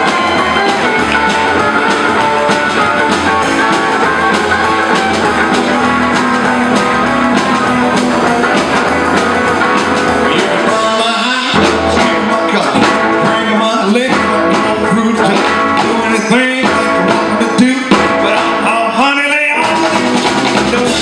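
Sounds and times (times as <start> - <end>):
slapped upright bass: 0.0 - 18.8, 19.5 - 21.0
rockabilly band playing: 0.0 - 21.0.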